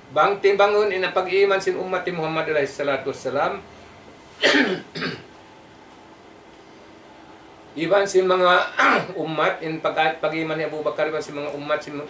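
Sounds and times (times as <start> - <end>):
man coughing: 4.4 - 5.3, 8.8 - 9.2.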